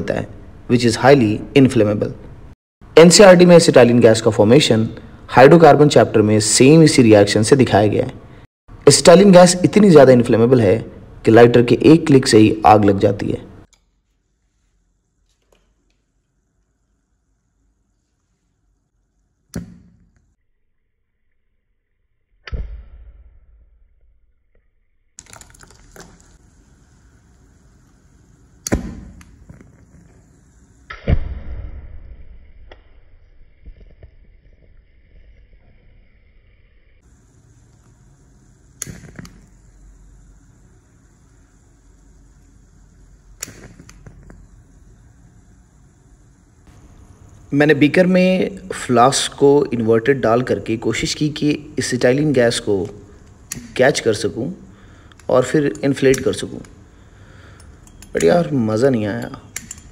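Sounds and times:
faint crackles of burning: 0:25.2 - 0:30.9, 0:37.0 - 0:48.6
sharp pops of gas igniting: 0:28.5 - 0:33.0, 0:38.6 - 0:39.7, 0:43.2 - 0:44.6, 0:52.8 - 0:53.8.

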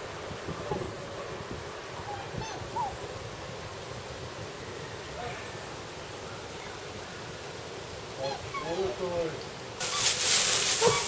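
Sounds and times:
wind: 0:00.0 - 0:11.0
faint bird calls: 0:08.2 - 0:09.0, 0:09.8 - 0:11.0.

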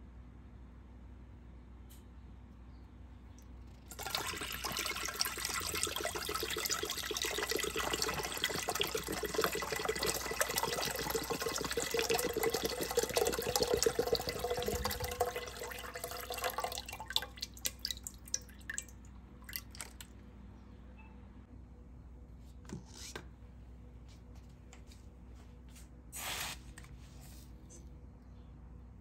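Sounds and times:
liquid pouring into a steel pot: 0:03.9 - 0:20.1.

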